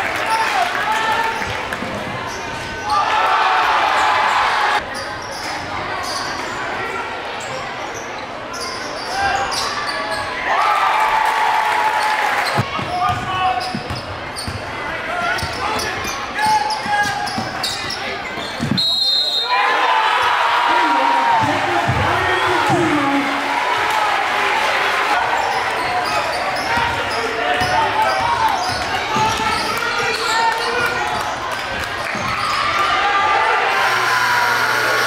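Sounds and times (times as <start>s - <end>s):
crowd cheering: 0.0s - 4.8s, 10.4s - 12.7s, 19.0s - 35.0s
shoe squeaks: 13.6s - 14.6s, 15.3s - 19.2s
high whistle: 18.8s - 19.6s.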